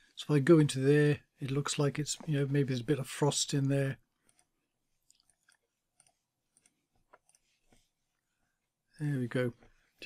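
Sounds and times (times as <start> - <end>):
computer mouse clicks: 4.2 - 7.8.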